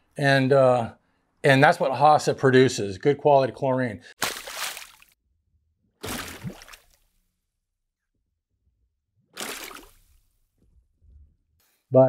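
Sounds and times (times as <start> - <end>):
water splash effects: 4.2 - 5.2, 6.0 - 7.1, 9.4 - 10.3.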